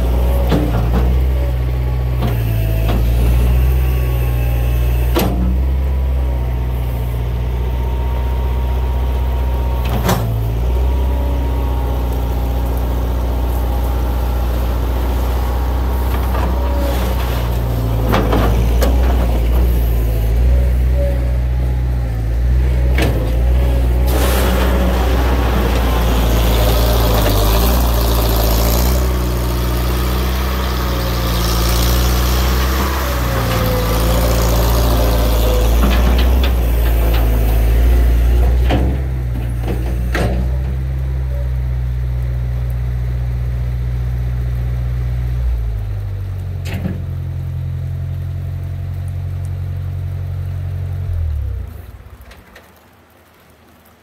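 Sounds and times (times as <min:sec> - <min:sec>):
loader engine running: 0:00.0 - 0:53.8
rushing noise: 0:21.9 - 0:38.2.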